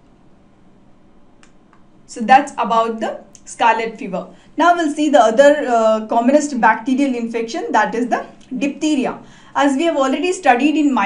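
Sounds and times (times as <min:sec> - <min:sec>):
faint hiss and hum: 0:00.0 - 0:11.0.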